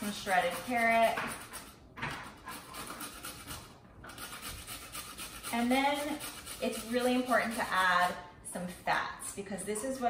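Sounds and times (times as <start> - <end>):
carrot rasping on metal grater: 0.0 - 8.2.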